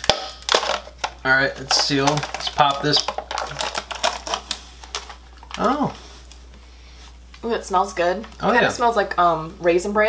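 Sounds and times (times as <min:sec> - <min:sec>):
cup lid peeled open crackling: 0:00.0 - 0:06.4.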